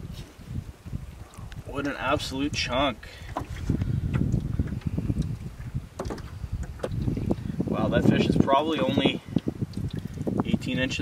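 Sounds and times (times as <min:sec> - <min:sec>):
wind rumble on microphone: 0:00.0 - 0:11.0
water lapping against boat: 0:02.8 - 0:10.6
small splashes: 0:03.1 - 0:07.1.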